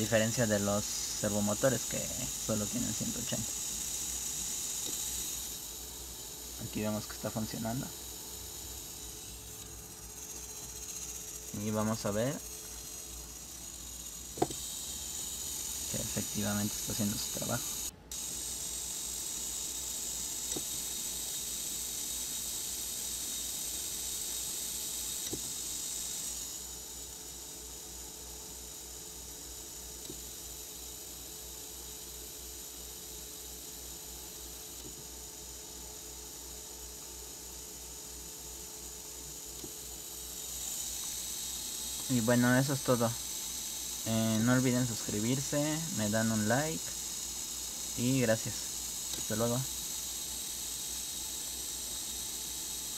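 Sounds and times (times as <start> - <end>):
small electric motor whine: 0.0 - 52.9.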